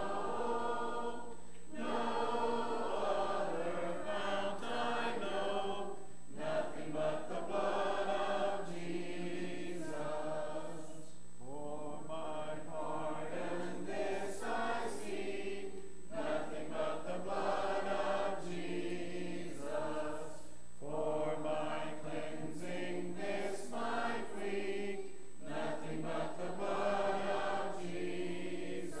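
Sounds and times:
congregation singing a hymn: 0.0 - 29.0.

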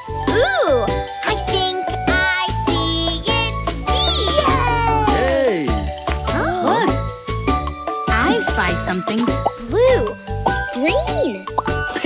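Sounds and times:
bouncy cartoon backing music: 0.0 - 12.0
cartoon children's voices calling out: 3.0 - 5.4.

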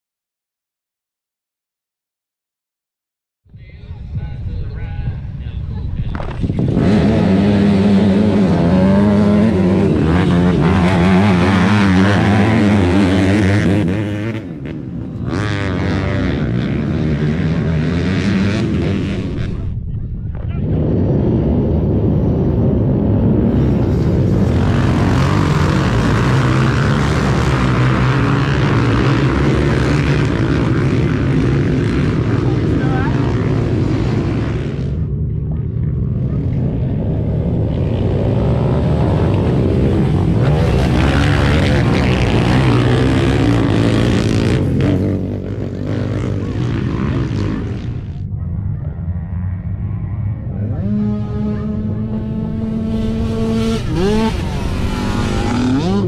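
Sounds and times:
atv engines revving: 3.8 - 56.0.

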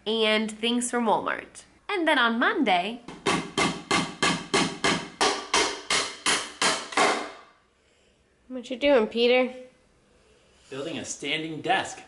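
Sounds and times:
hammer striking wooden frame: 3.1 - 7.5.

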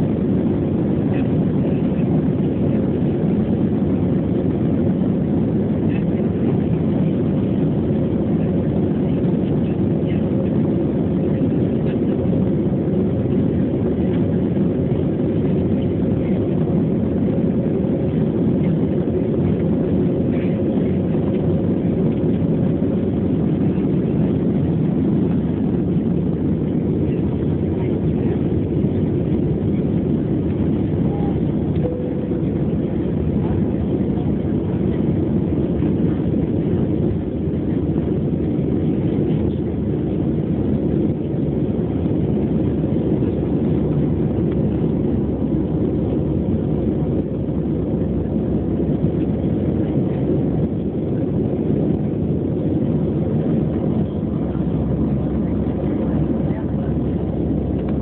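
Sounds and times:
jet engine cabin noise: 0.0 - 58.0.

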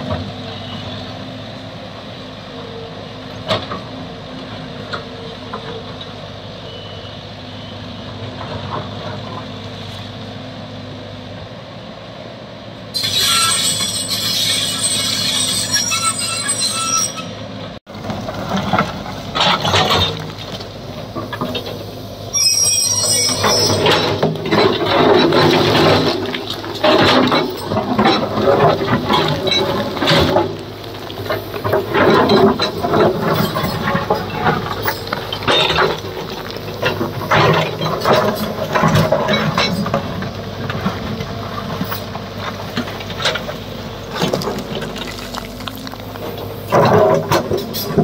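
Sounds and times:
excavator diesel engine running: 0.0 - 48.0
steel bucket scraping rock: 13.0 - 17.4, 21.2 - 40.2, 41.8 - 48.0
stones clattering down: 44.2 - 46.4.

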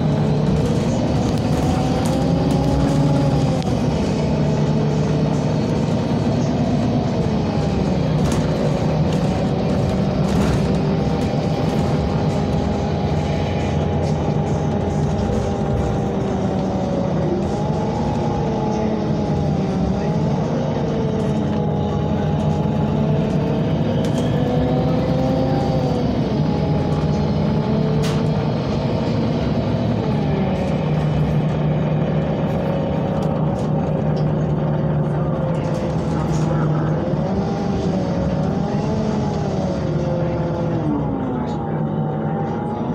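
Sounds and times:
bus engine low drone: 0.0 - 42.9
road noise: 0.0 - 42.9.

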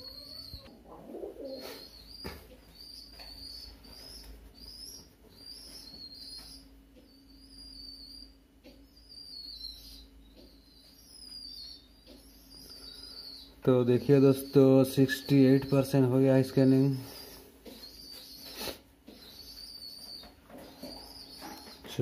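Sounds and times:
faint high bird chirps: 0.0 - 0.7, 1.4 - 22.0
faint steady hum: 0.0 - 22.0.

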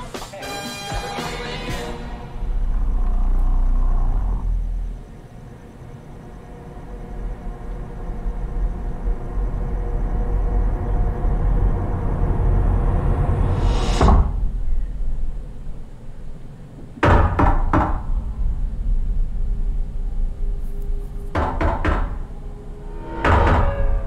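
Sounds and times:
low rumbling drone: 1.6 - 24.0
sudden hit: 13.2 - 15.4, 21.3 - 24.0.

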